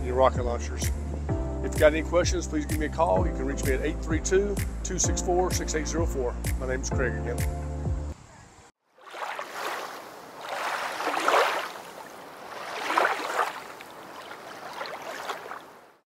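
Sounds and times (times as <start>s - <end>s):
waves breaking: 9.0s - 16.0s.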